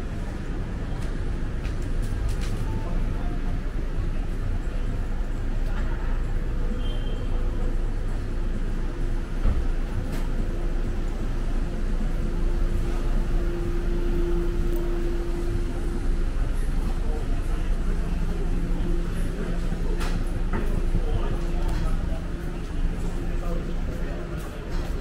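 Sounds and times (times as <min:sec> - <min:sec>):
traffic rumble: 0:00.0 - 0:25.0
voices of passers-by: 0:00.0 - 0:25.0.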